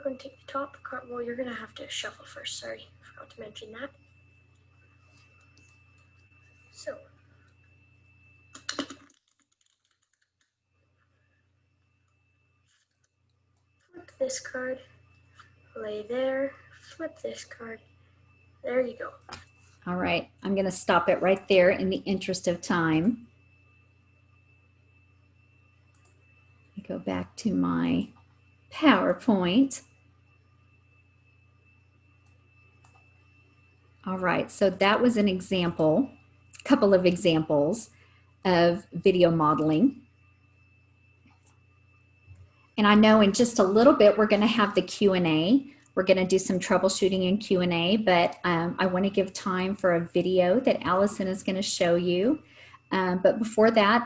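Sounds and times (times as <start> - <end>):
high whine: 0.0 - 9.3, 13.6 - 54.0
low electrical hum: 0.0 - 54.0
playing cards riffle-shuffled: 8.6 - 10.5
faint clicks: 25.9 - 26.2.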